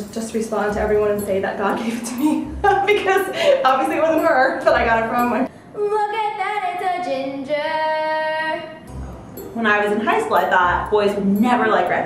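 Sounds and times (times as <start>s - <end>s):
girl singing: 5.8s - 8.8s.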